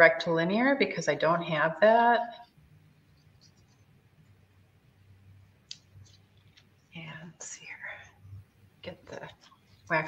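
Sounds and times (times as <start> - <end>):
faint low hum: 0.0 - 10.0
woman whispering: 7.0 - 8.2.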